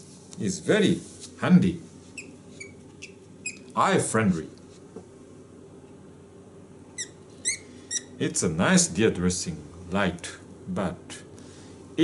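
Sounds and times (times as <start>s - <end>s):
high-pitched squeaks: 2.2s - 3.7s, 7.0s - 8.2s.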